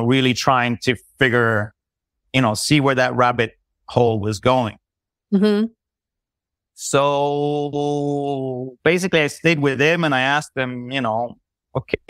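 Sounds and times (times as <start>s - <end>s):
man speaking: 0.0s - 4.8s, 6.8s - 12.0s.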